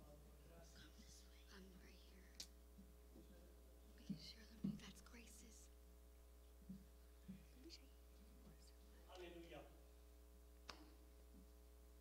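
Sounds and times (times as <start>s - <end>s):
people whispering: 0.0s - 2.5s, 3.2s - 5.7s, 7.2s - 9.6s
steady low hum: 0.0s - 12.0s.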